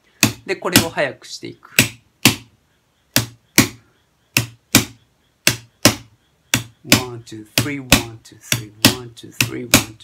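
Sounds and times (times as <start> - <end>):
drumstick striking cardboard drum: 0.2 - 1.0, 1.7 - 10.0.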